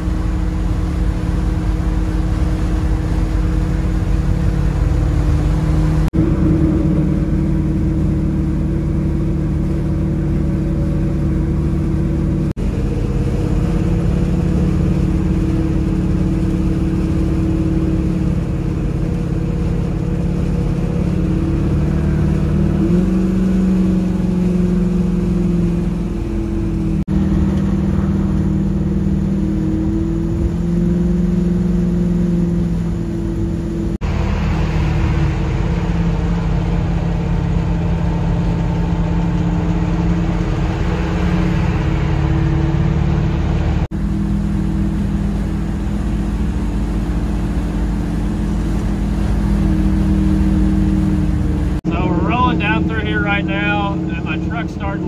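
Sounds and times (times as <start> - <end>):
engine drone: 0.0 - 55.0
road and wind noise: 0.0 - 55.0.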